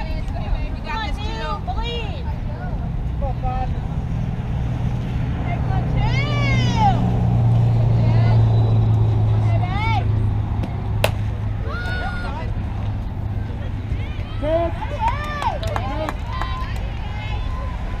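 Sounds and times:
voices shouting and calling out: 0.0s - 4.5s, 5.1s - 18.0s
steady low rumble: 0.0s - 15.5s.

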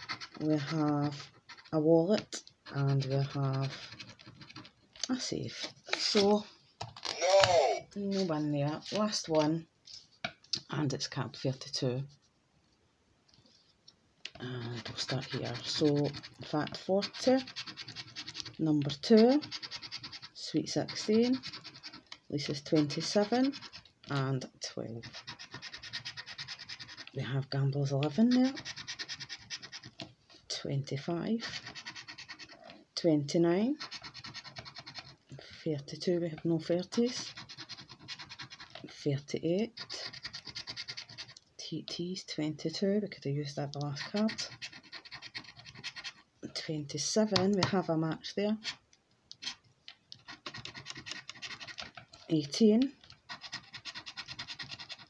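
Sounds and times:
scratcher scraping scratchcard: 0.0s - 4.7s, 14.4s - 24.2s, 24.9s - 27.2s, 28.0s - 30.0s, 31.4s - 32.6s, 33.8s - 35.2s, 36.2s - 38.8s, 39.7s - 41.4s, 43.8s - 46.2s, 48.6s - 49.6s, 50.2s - 55.0s.

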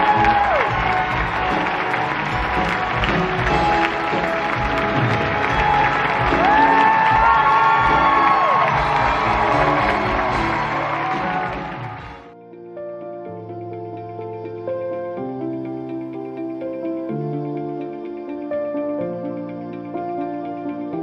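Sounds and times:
long whoop from crowd: 0.0s - 2.9s, 5.1s - 12.1s
audience cheering and applauding: 0.0s - 12.4s
music: 0.0s - 21.0s.

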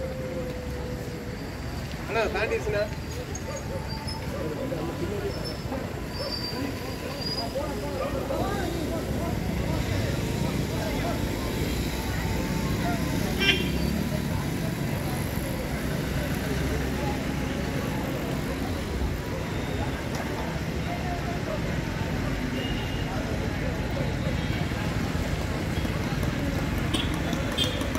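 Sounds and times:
people talking in background: 0.0s - 27.9s.

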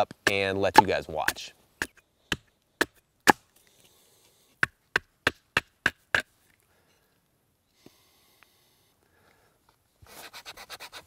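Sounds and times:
hatchet chopping wood: 0.0s - 3.5s, 4.6s - 6.3s.

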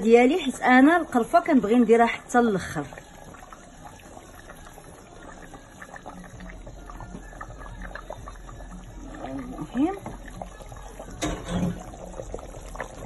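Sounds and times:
stew bubbling and popping: 0.0s - 13.0s.

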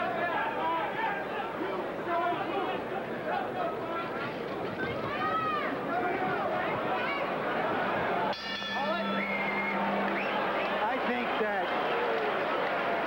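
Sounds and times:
arena crowd noise: 0.0s - 13.0s
voices shouting: 4.8s - 13.0s
low tone with overtones: 8.4s - 11.4s.

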